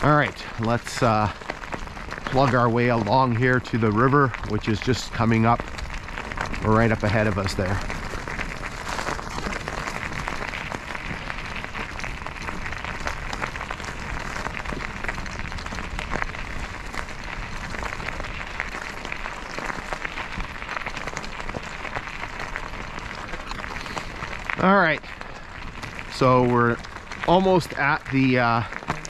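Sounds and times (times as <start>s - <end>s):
bicycle tyres rolling on gravel: 0.0s - 29.0s.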